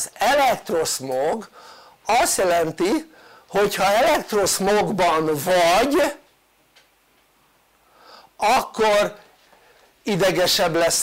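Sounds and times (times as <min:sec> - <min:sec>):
man speaking: 0:00.0 - 0:06.3, 0:08.4 - 0:09.3, 0:10.0 - 0:11.0
soft intake of breath: 0:01.5 - 0:02.0, 0:03.1 - 0:03.5, 0:07.8 - 0:08.4, 0:09.4 - 0:10.0.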